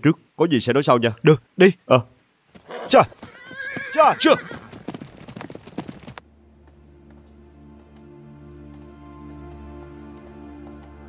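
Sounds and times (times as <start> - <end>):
horse hooves on dirt: 2.5 - 11.0.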